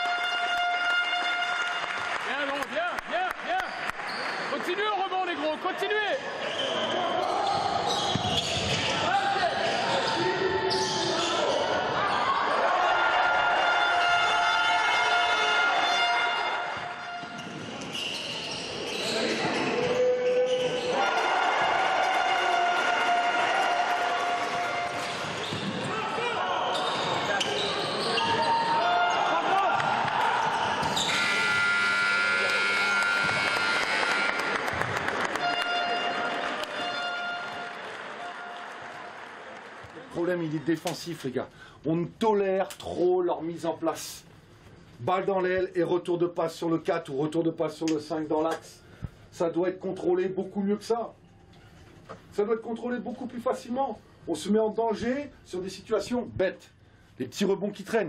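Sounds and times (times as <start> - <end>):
ball bouncing and kicked: 8.1 - 8.8
people shouting: 12.0 - 17.2, 19.7 - 25.2, 25.8 - 27.4, 28.0 - 31.0.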